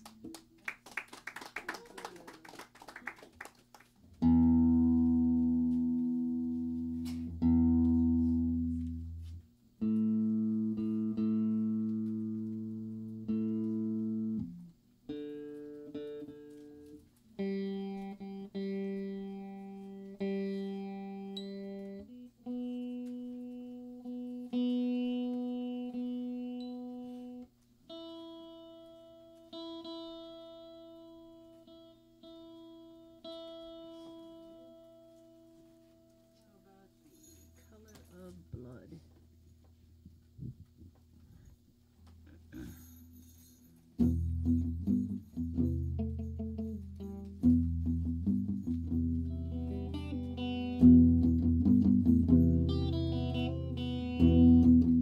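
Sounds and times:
electric guitar strings plucked: 4.2s - 36.2s, 44.0s - 55.0s.

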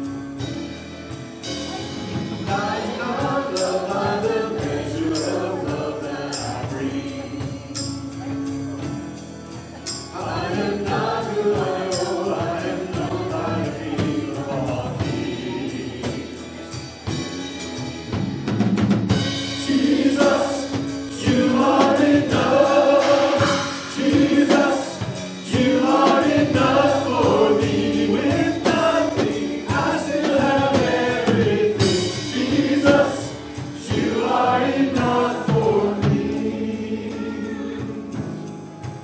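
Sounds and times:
band playing worship music: 0.0s - 39.0s
man and woman singing: 2.5s - 8.1s, 10.2s - 18.1s, 19.6s - 38.3s.

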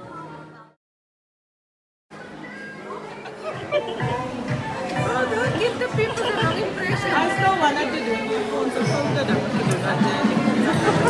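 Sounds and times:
background music: 2.2s - 11.0s
people talking: 2.2s - 11.0s.

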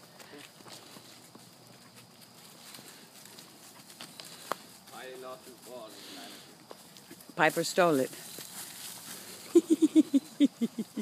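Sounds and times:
footsteps on dry leaves: 0.0s - 9.6s.

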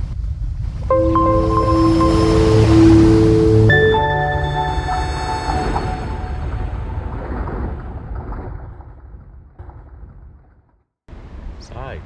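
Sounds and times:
sustained chime notes: 0.9s - 7.5s
low noisy wash: 0.9s - 8.0s.

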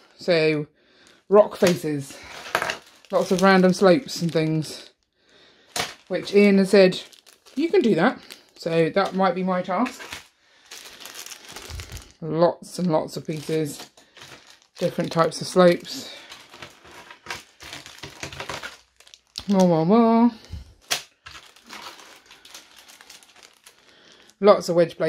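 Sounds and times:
plastic bags crinkling: 1.0s - 25.0s.

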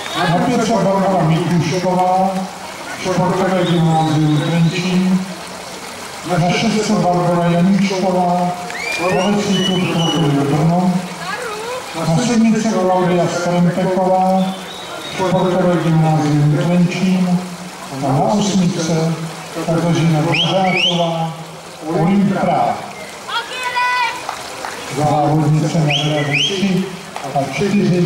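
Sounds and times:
hubbub of swimming pool: 0.0s - 28.0s
high-pitched shouted call: 23.3s - 24.2s.

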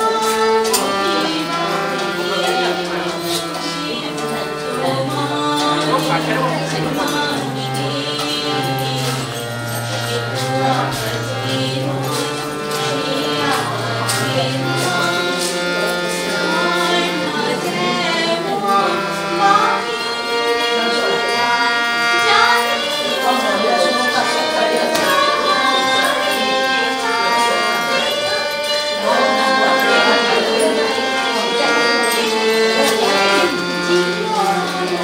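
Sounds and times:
held accompaniment note: 0.0s - 35.0s
voices singing devotional song: 0.0s - 35.0s.

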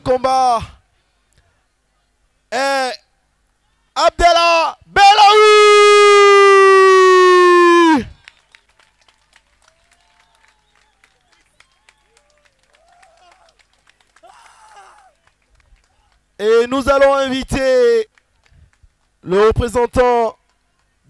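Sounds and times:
announcer long held call: 4.3s - 8.0s
faint scattered clapping: 8.1s - 16.4s, 18.0s - 21.0s.

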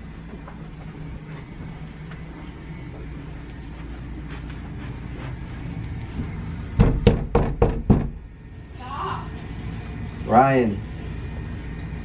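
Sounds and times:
low steady hum: 0.0s - 12.0s
quick knocks on a door: 6.8s - 8.2s.

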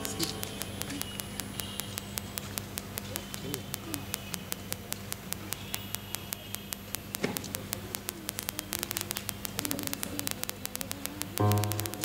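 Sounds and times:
rapid static clicks: 0.0s - 12.0s
steady electrical hum: 0.0s - 12.0s.

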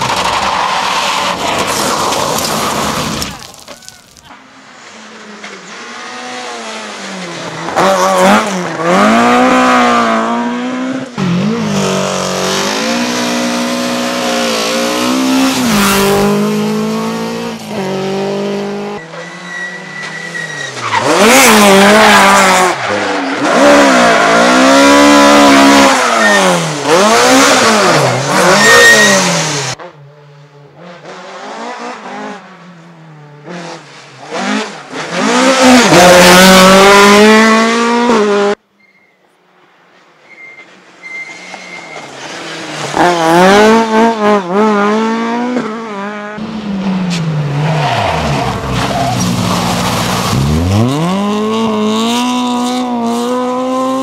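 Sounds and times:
rally car engines revving: 4.3s - 38.6s, 41.1s - 54.0s.

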